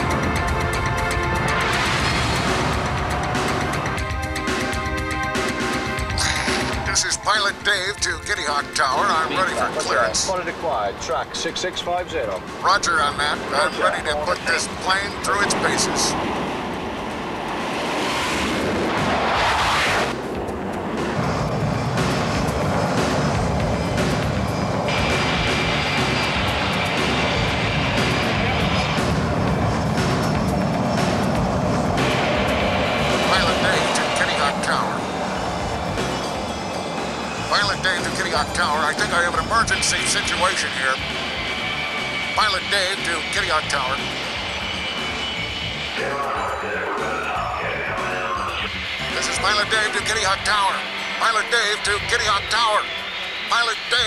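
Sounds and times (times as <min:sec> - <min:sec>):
airplane engine: 0:00.0 - 0:54.0
background music: 0:00.0 - 0:54.0.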